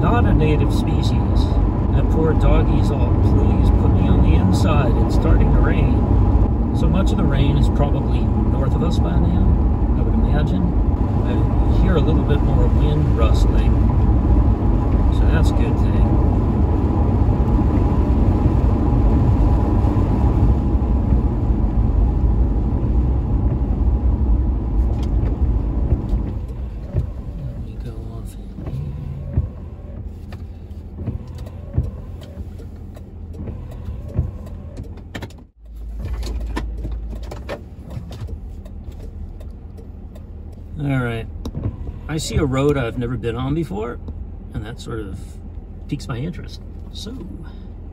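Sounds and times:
low engine hum: 0:00.0 - 0:47.9
tyre noise on wet road: 0:00.0 - 0:47.9.

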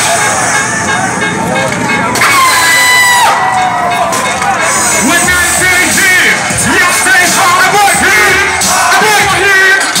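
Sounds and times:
crowd shouting and cheering: 0:00.0 - 0:10.0
loud rap music: 0:00.0 - 0:10.0.

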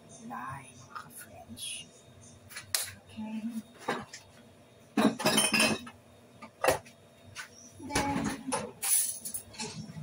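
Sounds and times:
glass and dishes clinking: 0:05.0 - 0:06.0.

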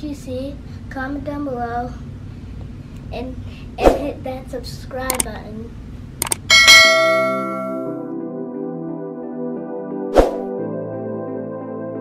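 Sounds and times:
quick clicks: 0:05.1 - 0:05.3, 0:06.2 - 0:06.5
bright bell ding: 0:06.5 - 0:08.0
soft background music: 0:07.0 - 0:12.0.

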